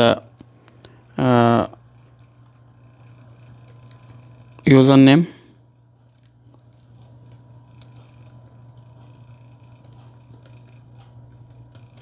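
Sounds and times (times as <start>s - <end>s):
low steady hum: 0.0s - 12.0s
soft laptop keystrokes: 6.1s - 12.0s.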